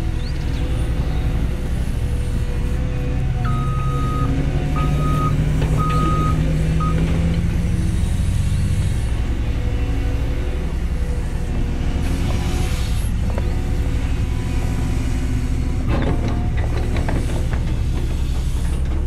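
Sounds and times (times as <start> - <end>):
excavator diesel engine under load: 0.0 - 19.0
reversing alarm beeps: 3.4 - 7.0.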